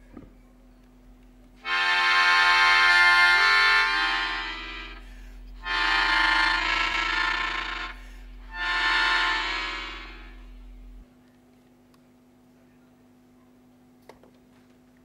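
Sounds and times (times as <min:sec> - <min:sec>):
low hum: 0:00.0 - 0:11.2
melodica playing chords: 0:01.6 - 0:11.0.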